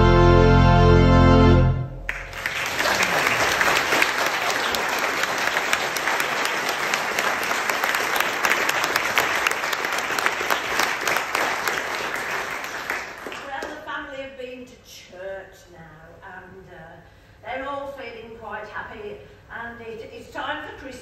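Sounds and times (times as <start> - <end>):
audience applauding: 2.1 - 13.7.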